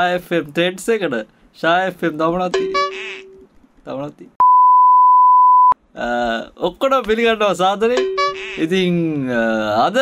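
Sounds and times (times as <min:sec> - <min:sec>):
censor bleep: 0:04.4 - 0:05.8.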